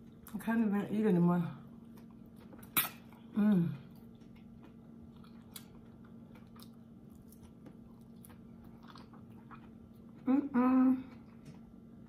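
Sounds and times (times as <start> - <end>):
person chewing: 1.7 - 10.5.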